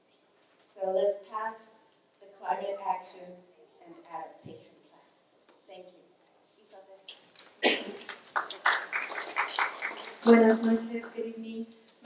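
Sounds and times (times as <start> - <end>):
audience applause: 8.0 - 10.4.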